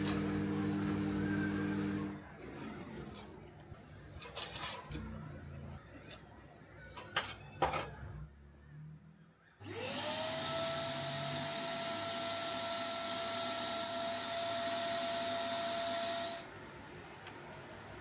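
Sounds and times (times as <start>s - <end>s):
electric motor whine: 0.0s - 2.2s, 9.6s - 16.5s.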